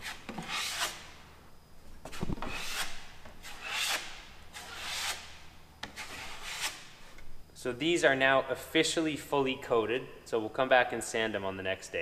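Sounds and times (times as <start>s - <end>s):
drywall knife scraping compound: 0.0s - 1.2s, 2.2s - 7.0s.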